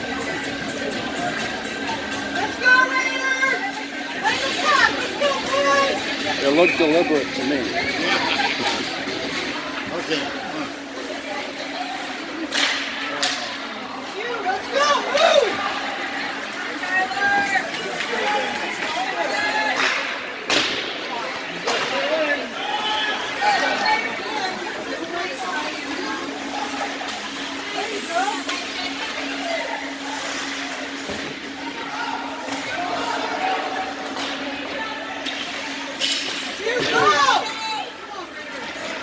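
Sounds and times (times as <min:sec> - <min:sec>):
spectators chattering and calling: 0:00.0 - 0:39.0.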